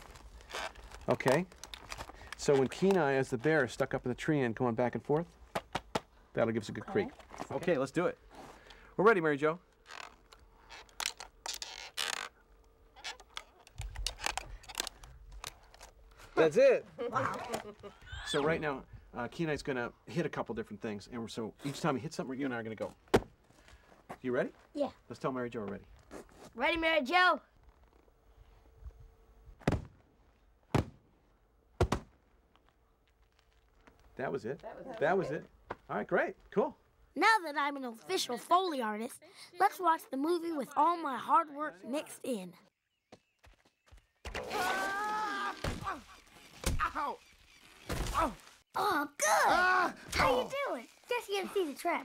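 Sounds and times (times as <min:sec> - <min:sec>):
bamboo creaking and scraping: 0:00.0 - 0:03.9, 0:09.7 - 0:16.4, 0:32.6 - 0:34.2, 0:44.3 - 0:48.7
sharp knocks on objects: 0:29.6 - 0:30.0, 0:30.7 - 0:31.0, 0:31.8 - 0:32.2.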